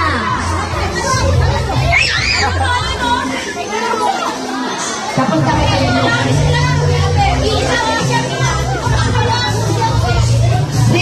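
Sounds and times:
children's voices: 0:00.0 - 0:11.0
music playing: 0:00.0 - 0:11.0
people talking: 0:00.0 - 0:11.0.

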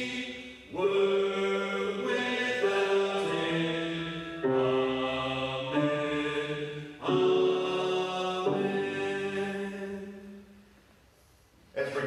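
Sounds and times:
slow hymn singing: 0:00.0 - 0:11.4.

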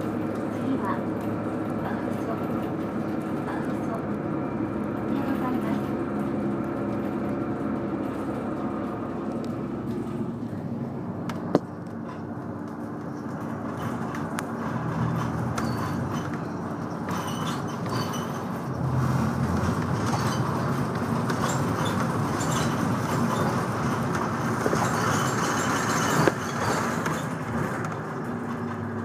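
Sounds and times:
bus engine hum and road noise: 0:00.0 - 0:29.0.

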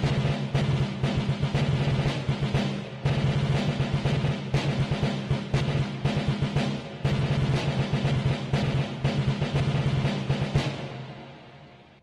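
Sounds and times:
march music with rapid drumming: 0:00.0 - 0:11.5.

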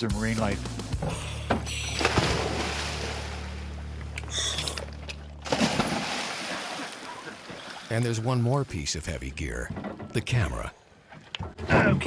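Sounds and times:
boat engine running: 0:00.9 - 0:05.6.

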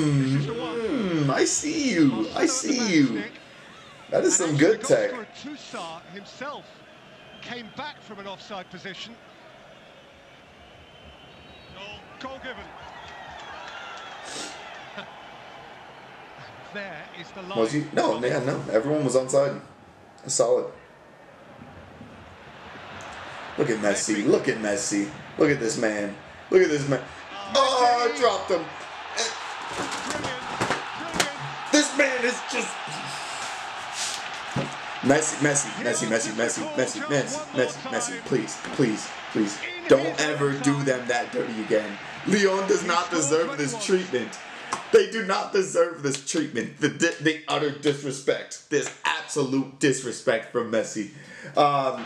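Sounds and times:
man exclaiming excitedly: 0:00.0 - 0:03.2, 0:35.6 - 0:38.3, 0:39.6 - 0:41.4, 0:42.4 - 0:44.2
man commentating: 0:00.0 - 0:03.4, 0:04.0 - 0:06.8, 0:07.4 - 0:09.2, 0:16.6 - 0:19.6, 0:23.6 - 0:33.5, 0:35.0 - 0:52.0
broadcast background noise: 0:00.0 - 0:52.0.

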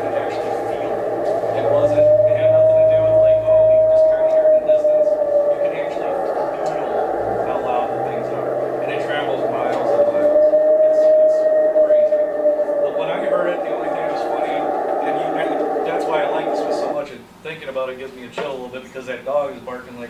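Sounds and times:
wailing howls over loudspeaker: 0:00.0 - 0:17.1.

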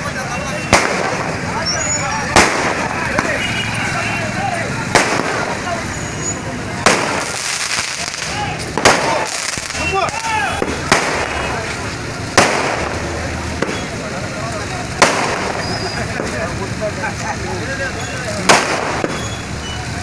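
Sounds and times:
crowd voices: 0:00.0 - 0:20.0
firecracker bangs: 0:00.4 - 0:04.1, 0:04.8 - 0:16.6, 0:18.3 - 0:19.6.

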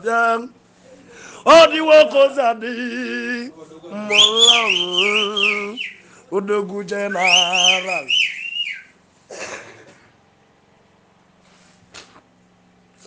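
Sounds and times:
man chanting: 0:01.4 - 0:08.2
high whistling melody: 0:04.1 - 0:06.0, 0:07.1 - 0:08.9.

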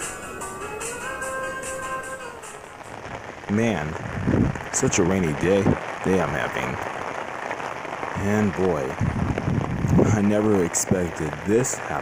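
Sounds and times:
held chord: 0:00.0 - 0:03.0
light high ticking beat: 0:00.0 - 0:03.1.

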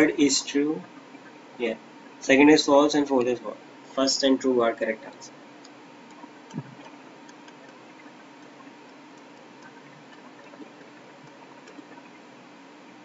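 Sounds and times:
steady low hiss: 0:00.0 - 0:13.0
stylus tapping on tablet: 0:06.5 - 0:07.8
soft low thump: 0:06.6 - 0:06.9.

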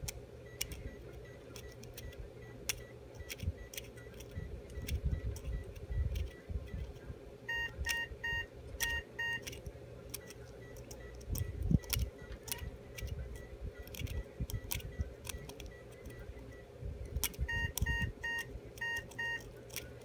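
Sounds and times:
steady low hum: 0:00.0 - 0:20.0
short electronic beeps: 0:07.5 - 0:09.4, 0:17.4 - 0:19.4.

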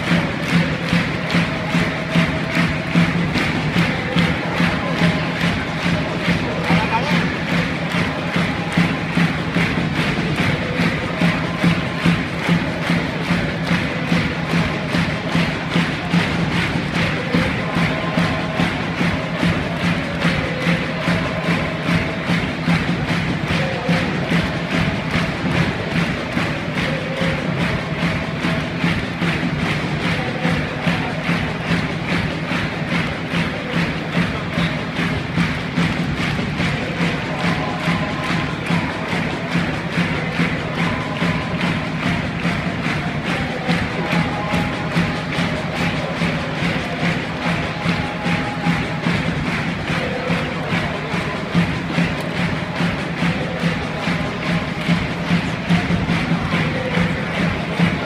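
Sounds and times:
drum beat: 0:00.0 - 0:58.0.

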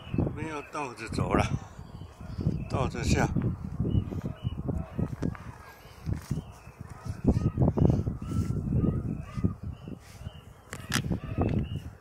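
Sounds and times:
footsteps on rock and grass: 0:05.0 - 0:07.3.

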